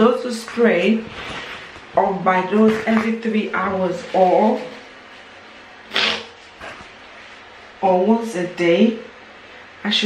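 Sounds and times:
person blowing nose into tissue: 0:05.9 - 0:06.6.

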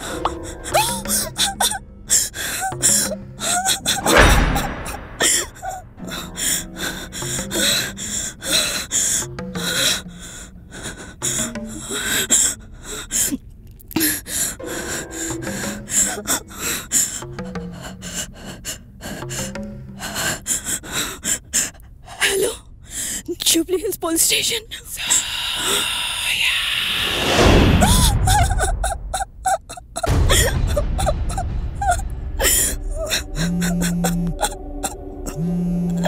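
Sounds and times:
woman gasping and breathing hard: 0:00.0 - 0:23.3, 0:27.8 - 0:36.0
tense background music: 0:00.0 - 0:24.3, 0:24.9 - 0:36.0.

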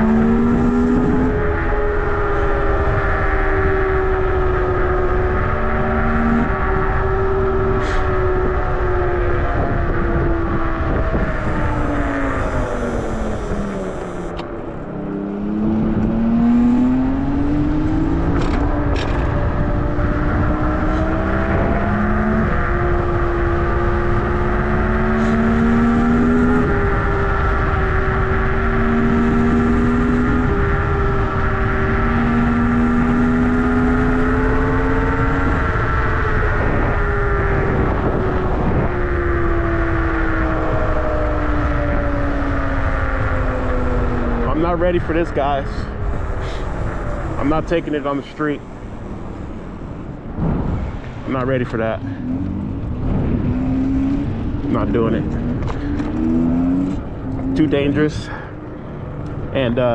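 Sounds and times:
wind noise on microphone: 0:00.0 - 0:59.9
electric scooter motor whining: 0:07.7 - 0:15.3.

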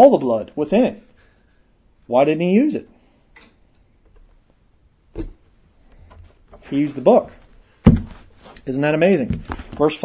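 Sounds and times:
person speaking: 0:00.0 - 0:01.2, 0:02.0 - 0:03.0, 0:06.5 - 0:07.6, 0:08.4 - 0:10.0.

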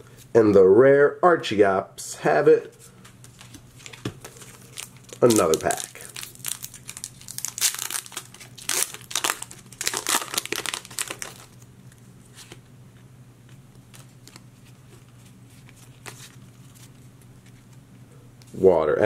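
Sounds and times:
foil wrapper crinkling and tearing: 0:03.8 - 0:11.6.

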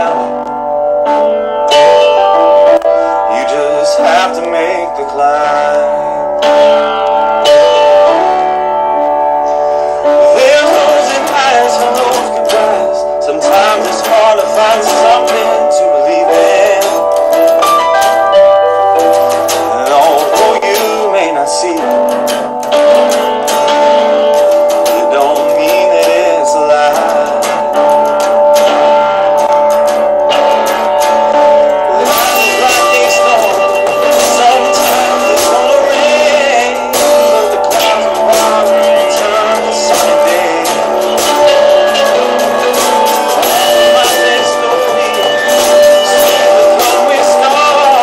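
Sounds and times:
bass guitar: 0:00.0 - 0:48.0
electric guitar: 0:00.0 - 0:48.0
nylon-string acoustic guitar: 0:00.0 - 0:48.0
drum kit and cymbals: 0:26.9 - 0:48.0.

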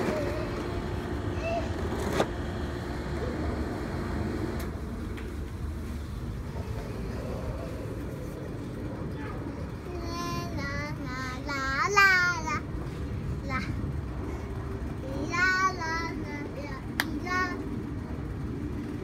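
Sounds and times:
steady low rumble: 0:00.0 - 0:19.0.

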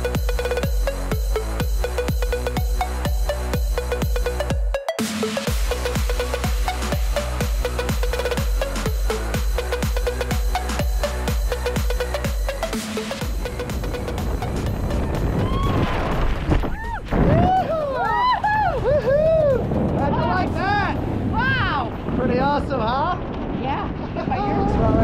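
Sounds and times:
wind rushing over microphone: 0:14.0 - 0:25.0
excited whoops and cheers: 0:15.3 - 0:16.1, 0:16.7 - 0:19.7.

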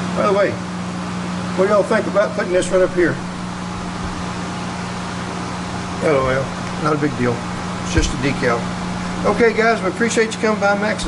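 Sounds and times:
low machine hum: 0:00.0 - 0:11.0
faint low thump: 0:07.9 - 0:09.2.

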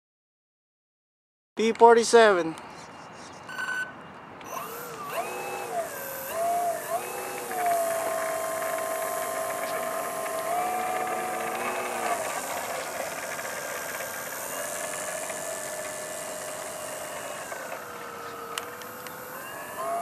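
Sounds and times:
electric motor and propeller whining: 0:03.6 - 0:20.0.

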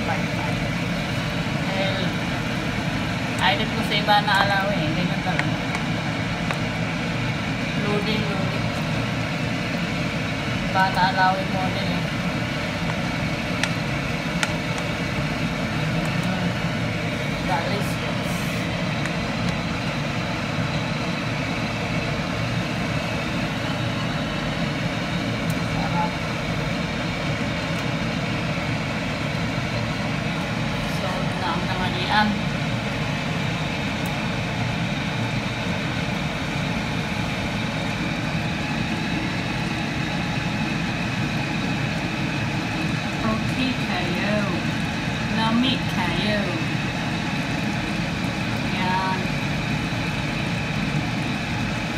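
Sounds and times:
steady low rumble: 0:00.0 - 0:51.9.

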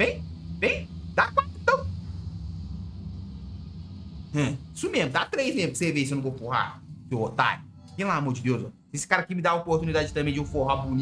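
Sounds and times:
dark ambient drone: 0:00.0 - 0:11.0.

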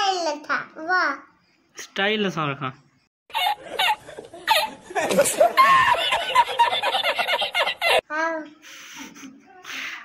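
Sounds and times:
man laughing hard: 0:03.4 - 0:08.0.

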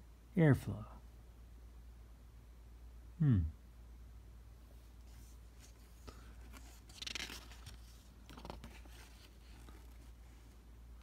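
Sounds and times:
hand brushing paper page: 0:04.7 - 0:10.6.

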